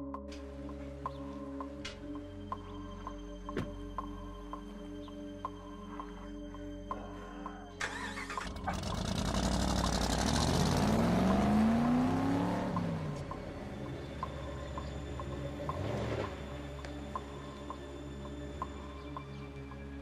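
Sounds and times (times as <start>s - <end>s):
quiet music with ticking beat: 0.0s - 20.0s
pickup truck engine accelerating: 7.8s - 17.0s
smaller vehicle passing: 7.9s - 16.8s.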